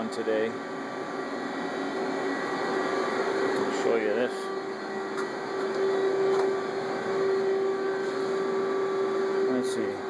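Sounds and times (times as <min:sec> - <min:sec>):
milling machine hum: 0:00.0 - 0:10.0.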